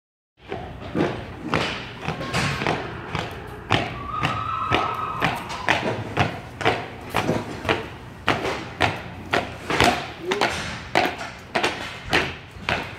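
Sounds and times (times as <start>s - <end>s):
horse hooves on concrete: 0.4s - 12.9s.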